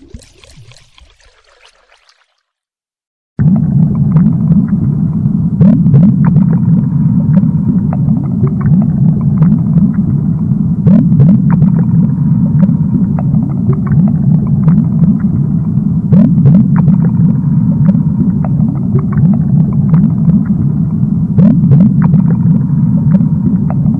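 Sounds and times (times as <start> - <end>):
bubbling chirps: 0.0 - 2.6
underwater low rumble: 3.4 - 23.9.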